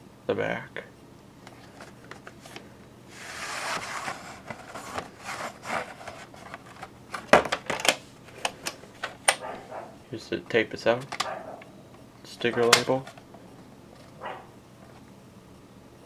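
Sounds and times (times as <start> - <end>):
cassette sliding from cardboard sleeve: 1.6 - 7.2.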